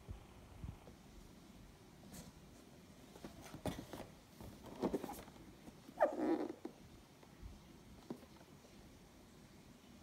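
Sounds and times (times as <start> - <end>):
rustling of cardboard boxes: 2.2 - 6.0
dog yelping and whining: 6.0 - 6.6.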